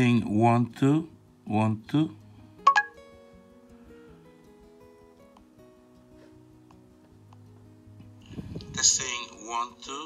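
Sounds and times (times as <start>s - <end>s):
plucked guitar notes: 2.6s - 8.2s.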